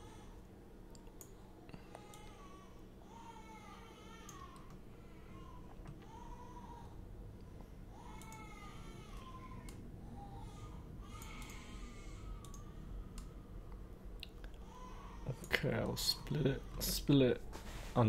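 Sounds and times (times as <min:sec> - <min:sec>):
steady low hum: 0:00.0 - 0:18.0
computer mouse clicks: 0:04.2 - 0:04.8, 0:08.1 - 0:08.5, 0:11.2 - 0:11.6, 0:12.4 - 0:13.3.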